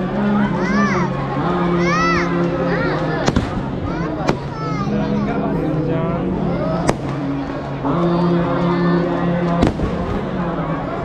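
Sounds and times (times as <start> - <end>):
crowd voices: 0.0 - 11.0
music: 0.0 - 11.0
fireworks bangs: 3.2 - 4.6, 9.6 - 10.3.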